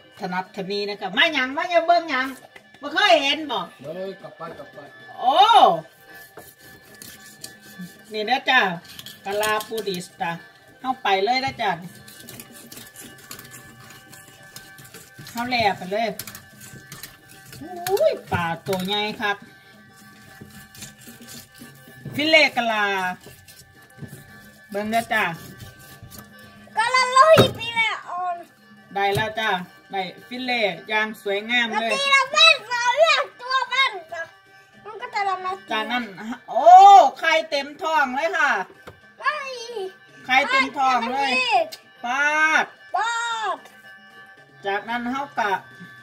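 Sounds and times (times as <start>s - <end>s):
quiet background music: 0.0s - 46.0s
knife slicing fish: 5.8s - 10.1s, 11.4s - 26.7s
child speaking: 26.8s - 28.5s, 31.7s - 35.7s, 39.2s - 41.8s, 42.9s - 43.6s.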